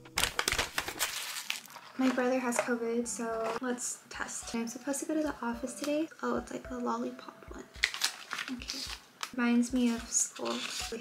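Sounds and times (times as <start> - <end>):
plastic packaging crinkling: 0.0 - 2.6, 7.8 - 11.0.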